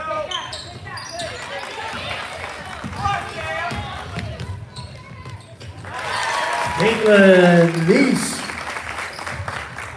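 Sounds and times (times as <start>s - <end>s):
crowd cheering and clapping: 1.4s - 4.1s, 5.8s - 9.9s.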